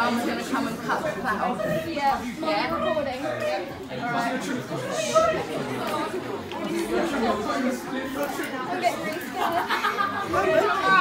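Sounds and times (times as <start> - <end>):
people talking indistinctly: 0.0 - 11.0.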